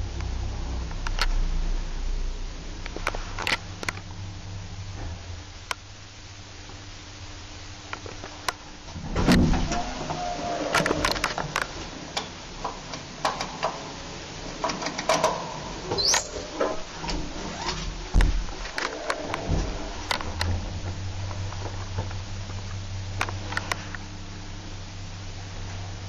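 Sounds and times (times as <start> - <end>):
lift car humming in shaft: 8.8 - 26.0
rising squeak: 9.7 - 11.3, 15.9 - 16.6.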